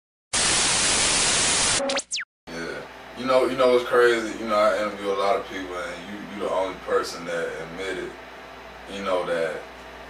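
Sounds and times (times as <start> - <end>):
tv static hiss: 0.4 - 2.1
rising electronic sweep: 0.6 - 2.2
short electronic tones: 1.5 - 2.3.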